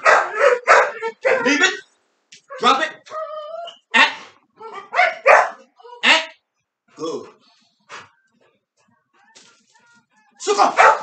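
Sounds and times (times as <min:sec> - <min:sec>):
dog barking sharply: 0:00.0 - 0:01.5, 0:04.9 - 0:05.6, 0:10.7 - 0:11.0.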